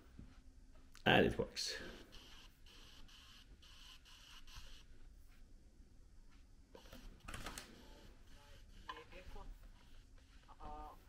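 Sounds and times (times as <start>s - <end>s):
disc drive whirring: 1.8s - 5.0s, 6.8s - 11.0s.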